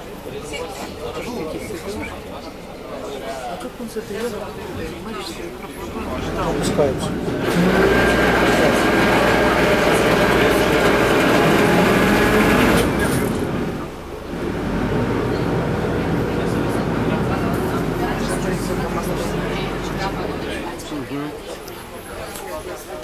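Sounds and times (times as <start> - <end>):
boat engine running: 5.5 - 22.0.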